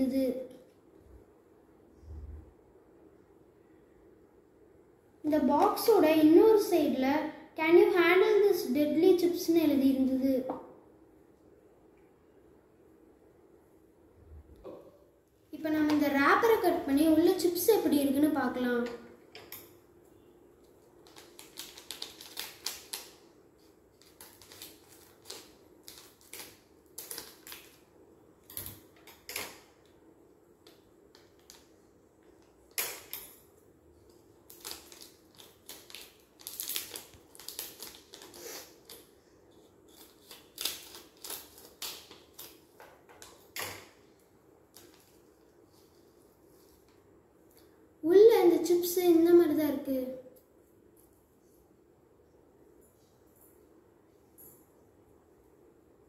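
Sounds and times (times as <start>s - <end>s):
chip packet crinkling: 21.0s - 27.9s, 34.1s - 42.7s.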